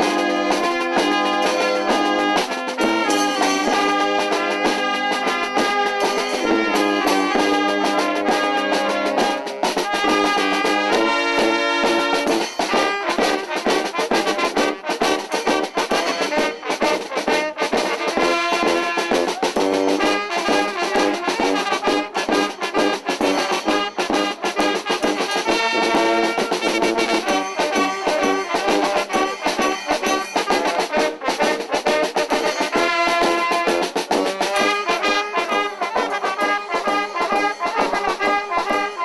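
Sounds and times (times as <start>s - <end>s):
brass band music: 0.0s - 39.0s.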